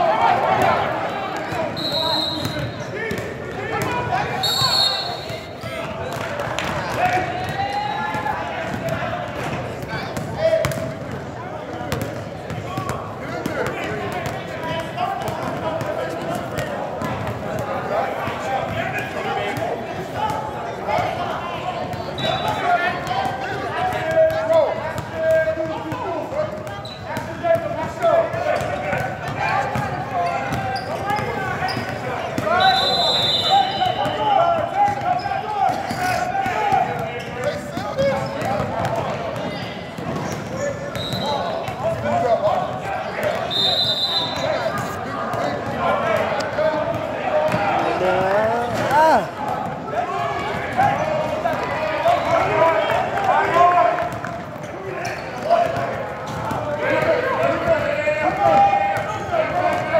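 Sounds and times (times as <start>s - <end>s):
crowd chatter in a gym: 0.0s - 59.9s
sneaker squeaks: 1.4s - 3.2s, 4.4s - 6.2s, 22.0s - 22.7s, 26.6s - 27.3s, 29.7s - 36.3s, 36.9s - 41.9s, 43.2s - 45.6s, 54.2s - 56.6s.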